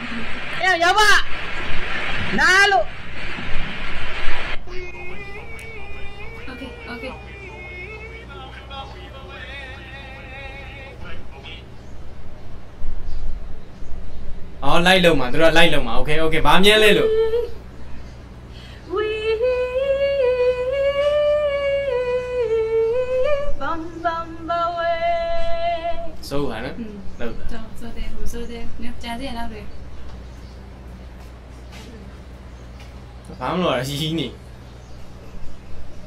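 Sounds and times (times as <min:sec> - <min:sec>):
loud hiss: 0:00.0 - 0:04.8
simple background music: 0:04.6 - 0:11.1.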